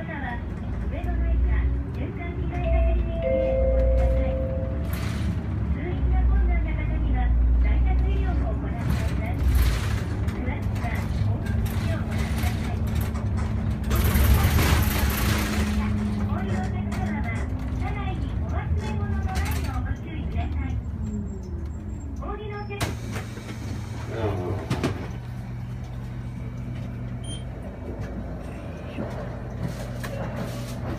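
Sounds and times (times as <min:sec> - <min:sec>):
bus engine rumble: 0:00.0 - 0:30.9.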